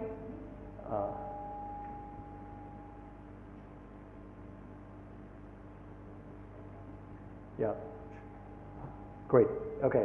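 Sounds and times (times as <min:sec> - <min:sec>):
low mains hum: 0:00.0 - 0:10.0.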